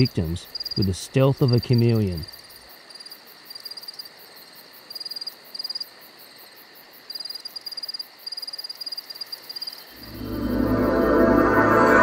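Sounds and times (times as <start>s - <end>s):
cricket chirping: 0.0s - 12.0s
faint steady hiss: 0.0s - 12.0s.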